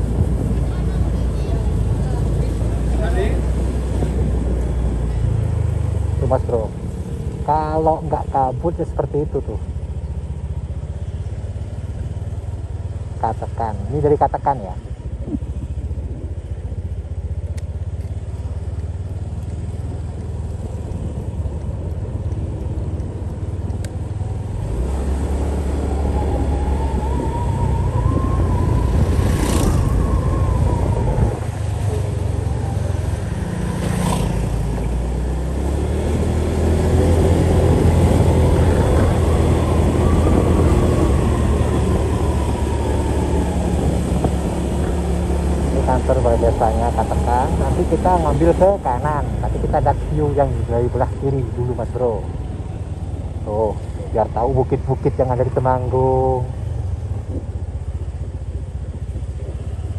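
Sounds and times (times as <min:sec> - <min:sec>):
motorcycle engine revving: 0:14.8 - 0:55.0.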